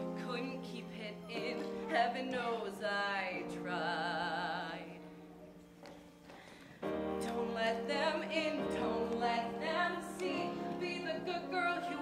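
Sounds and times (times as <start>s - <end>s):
woman singing with vibrato: 0.0s - 5.1s, 7.2s - 12.0s
pop backing track: 5.4s - 12.0s.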